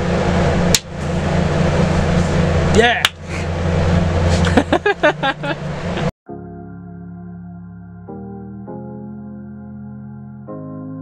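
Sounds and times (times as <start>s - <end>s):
vehicle interior drone: 0.0s - 8.1s.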